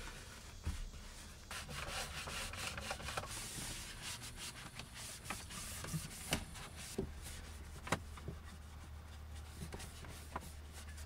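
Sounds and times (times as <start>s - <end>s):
cloth rubbing plastic: 1.1s - 11.0s.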